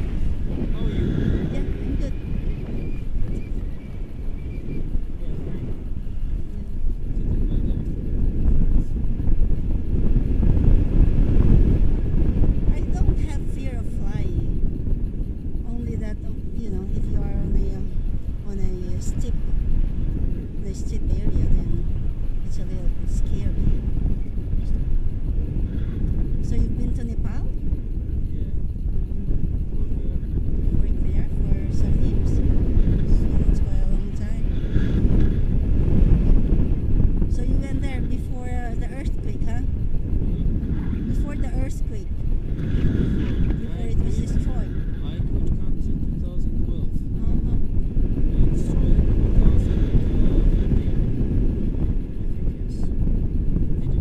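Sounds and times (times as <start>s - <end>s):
faint muffled voices: 0.0s - 3.8s, 26.4s - 34.8s, 42.9s - 51.1s
wind buffeting microphone: 0.0s - 54.0s
person talking: 0.5s - 2.4s, 12.7s - 14.5s, 15.6s - 19.4s, 20.6s - 23.8s, 26.4s - 27.5s, 29.2s - 32.4s, 33.0s - 34.5s, 37.3s - 39.7s, 40.3s - 42.1s, 43.5s - 46.2s.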